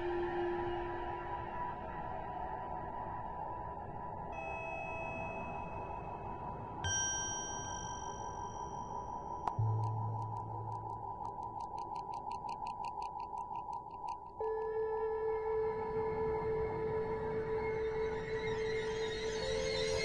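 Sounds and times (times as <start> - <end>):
synthesizer drone: 14.4 - 20.0.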